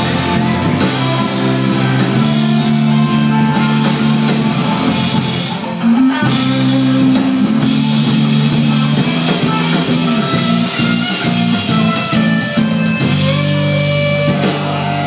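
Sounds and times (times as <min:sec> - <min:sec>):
drum kit beat: 0:00.0 - 0:15.0
electric guitars: 0:00.0 - 0:15.0.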